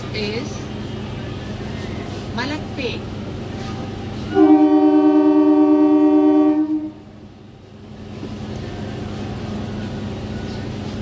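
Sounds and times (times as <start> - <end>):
train horn blast: 4.3 - 7.1.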